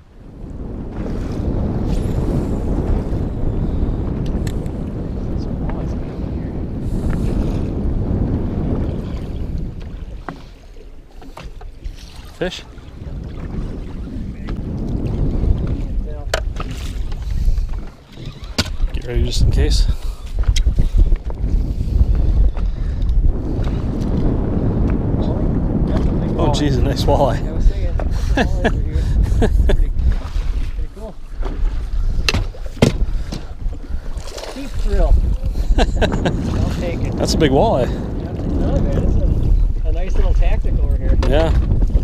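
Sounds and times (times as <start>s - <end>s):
water lapping against boat hull: 0.0s - 42.0s
wind rumble on microphone: 0.0s - 42.0s
sharp knocks: 32.2s - 33.5s.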